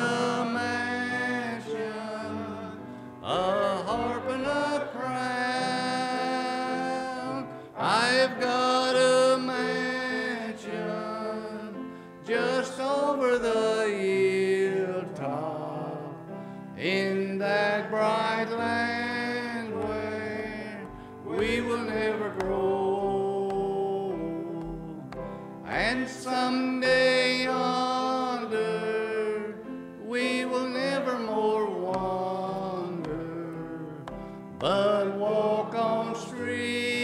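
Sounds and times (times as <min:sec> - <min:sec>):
man singing slow gospel song: 0:00.0 - 0:37.0
instrumental accompaniment: 0:17.5 - 0:28.9, 0:31.0 - 0:37.0.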